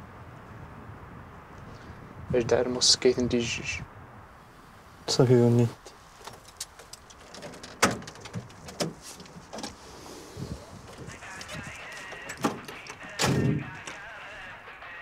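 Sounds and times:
clicks and knocks of handling: 6.2s - 9.8s, 10.8s - 14.0s
person speaking: 10.6s - 14.4s.

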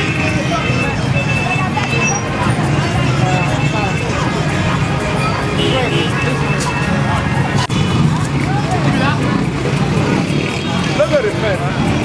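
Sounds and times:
vehicle engines running: 0.0s - 12.0s.

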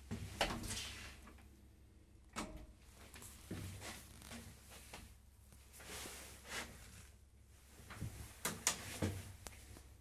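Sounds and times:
clothing rustling: 5.6s - 10.0s.

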